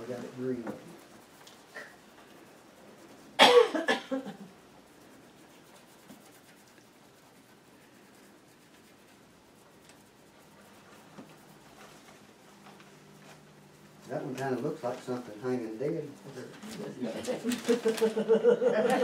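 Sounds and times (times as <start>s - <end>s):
person coughing: 3.4s - 4.4s.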